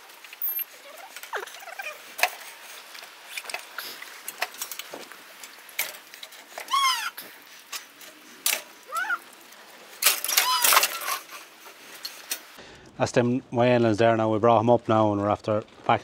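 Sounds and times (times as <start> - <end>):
calf squealing: 6.6 - 7.2, 8.9 - 9.3, 10.3 - 11.3
metal gate clanking and rattling: 10.0 - 11.5.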